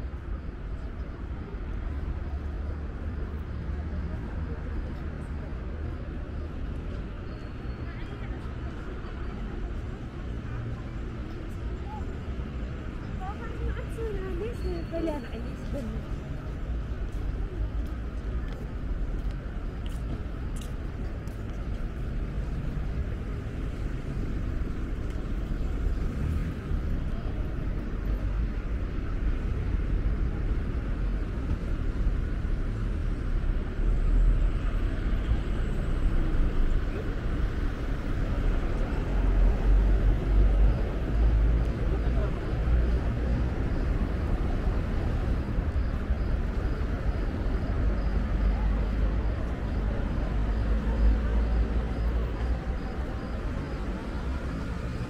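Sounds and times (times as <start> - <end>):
road traffic going by: 0.0 - 55.0.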